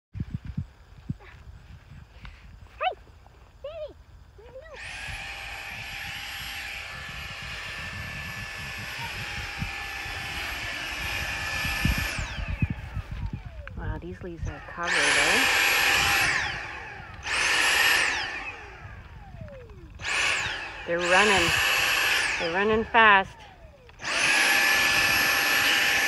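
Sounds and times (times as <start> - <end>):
handheld vacuum cleaner whine: 4.4 - 26.0.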